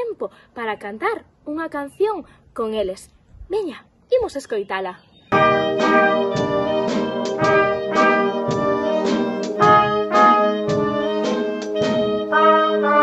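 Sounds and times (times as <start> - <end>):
wind band playing a tune: 5.3 - 13.0.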